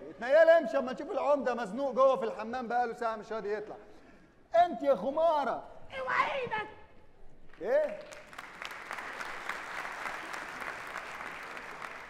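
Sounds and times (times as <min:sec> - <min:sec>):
audience applauding: 0:07.5 - 0:12.0.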